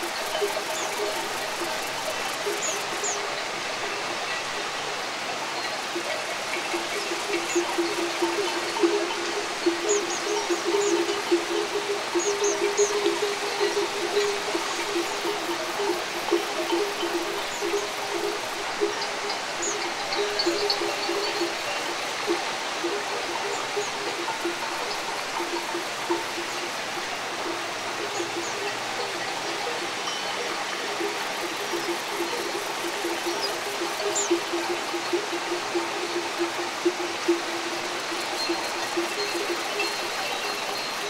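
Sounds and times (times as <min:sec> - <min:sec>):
cowbells clanking: 0:00.0 - 0:41.0
river flowing: 0:00.0 - 0:41.0.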